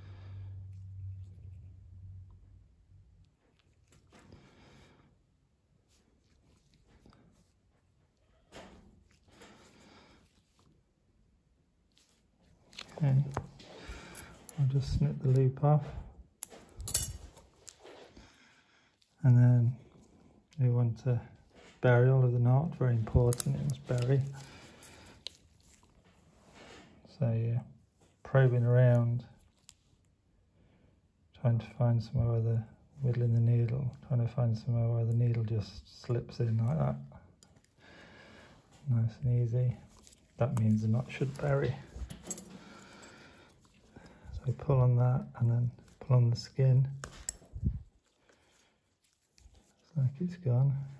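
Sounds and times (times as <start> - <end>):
instruments clinking: 16.4 - 17.4
surgical instruments clicking: 23.2 - 26.0, 47.0 - 47.5.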